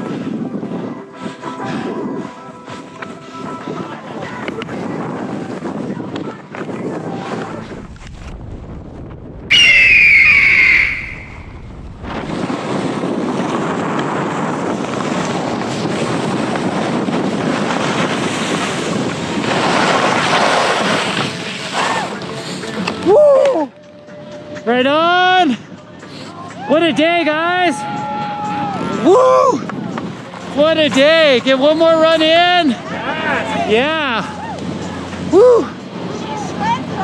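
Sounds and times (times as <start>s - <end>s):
wind over camera microphone: 0.0s - 23.8s
skis running over snow: 12.0s - 23.0s
whooping shouts: 23.0s - 23.7s, 27.7s - 29.7s, 32.9s - 34.6s.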